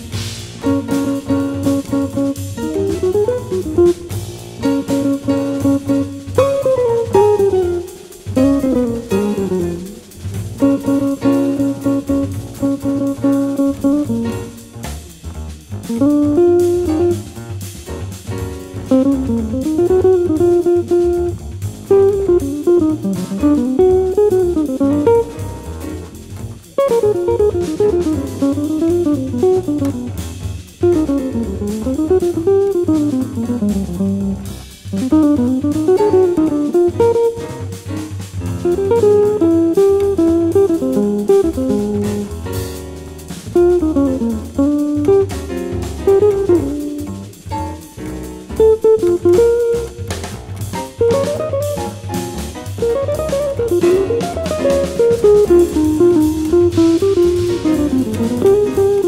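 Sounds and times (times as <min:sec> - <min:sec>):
bass: 0:00.0 - 0:59.0
drum kit: 0:00.0 - 0:59.0
electric jazz guitar: 0:00.0 - 0:59.0.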